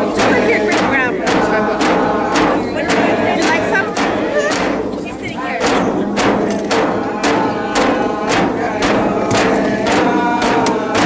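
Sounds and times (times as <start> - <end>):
frame drums beaten: 0.0 - 11.0
group of voices singing: 0.0 - 11.0.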